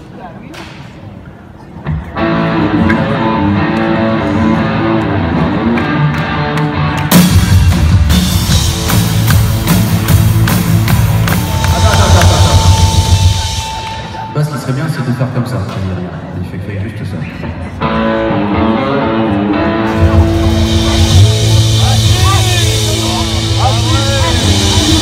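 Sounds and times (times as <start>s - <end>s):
drums: 0.0s - 16.3s, 17.2s - 25.0s
live band playing amplified music: 0.8s - 25.0s
sustained pitched notes: 18.2s - 25.0s.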